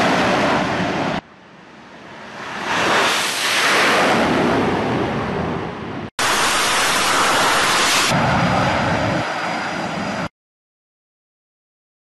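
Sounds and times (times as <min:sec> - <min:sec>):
jet engines at full thrust: 0:00.0 - 0:10.3.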